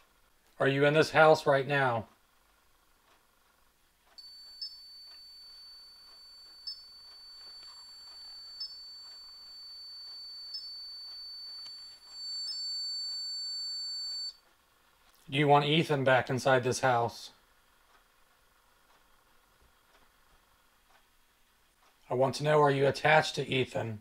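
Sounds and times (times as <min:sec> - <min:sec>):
electronic alarm tone: 0:04.2 - 0:14.4.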